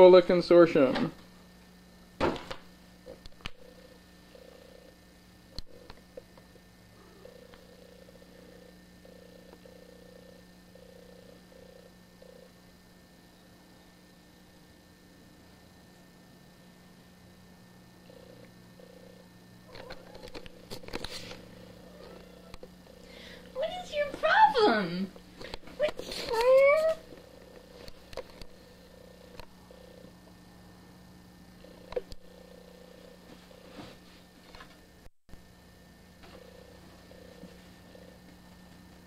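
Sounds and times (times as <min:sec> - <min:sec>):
cat purring: 0:03.1 - 0:06.0, 0:06.9 - 0:12.6, 0:18.0 - 0:24.6, 0:25.4 - 0:30.2, 0:31.6 - 0:34.0, 0:36.3 - 0:38.7.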